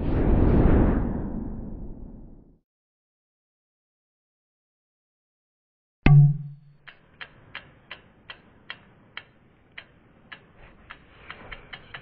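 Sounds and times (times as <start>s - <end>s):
clock-like ticking: 6.1s - 12.0s.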